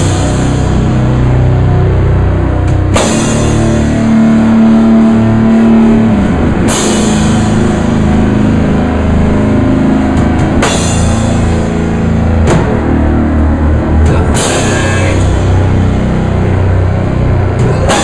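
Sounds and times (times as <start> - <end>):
rock band playing loudly: 0.0 - 18.0
pounding drums: 2.2 - 18.0
cymbal crashing: 2.5 - 18.0.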